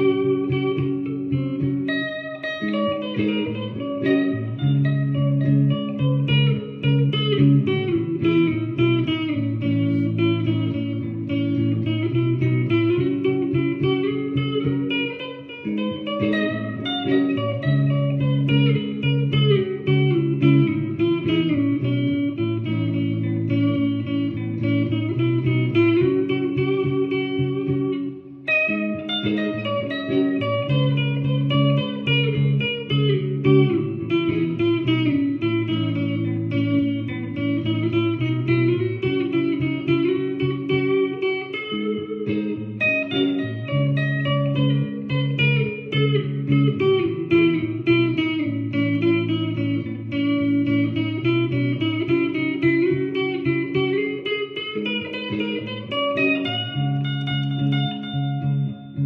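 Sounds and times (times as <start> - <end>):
electric guitar melody: 0.0 - 59.0.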